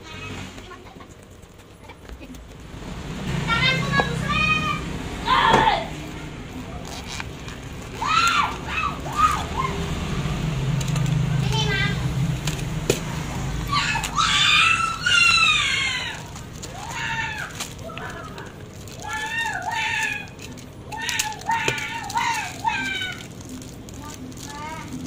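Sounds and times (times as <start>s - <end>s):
high-pitched voices shouting: 3.3s - 6.2s, 7.8s - 10.2s, 13.4s - 25.0s.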